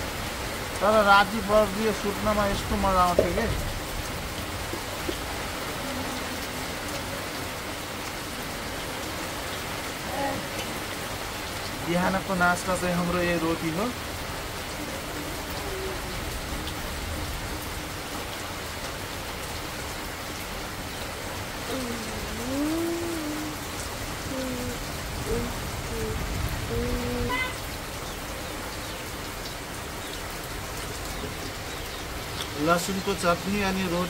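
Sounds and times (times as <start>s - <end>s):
heavy rain falling: 0.0s - 34.0s
person humming low gliding notes: 21.7s - 23.6s, 24.2s - 27.3s.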